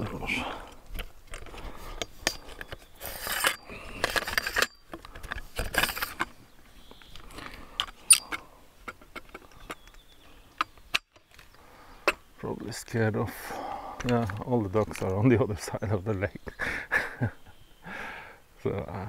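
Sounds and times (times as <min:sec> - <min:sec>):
tripod handling rustling: 0:00.6 - 0:12.3.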